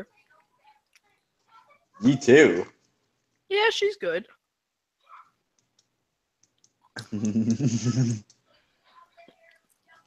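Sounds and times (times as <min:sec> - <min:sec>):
burst of laughter: 0:07.0 - 0:08.2.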